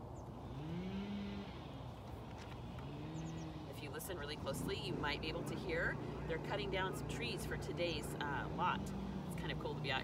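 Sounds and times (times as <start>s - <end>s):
distant chainsaw revving: 0.4s - 2.0s, 2.6s - 10.0s.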